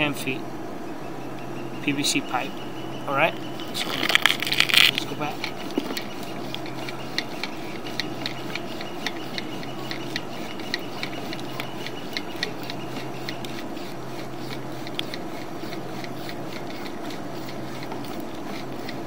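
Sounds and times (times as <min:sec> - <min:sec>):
low steady hum: 0:00.0 - 0:19.0
cable rubbing: 0:03.6 - 0:19.0
cable reel ticking: 0:04.0 - 0:19.0.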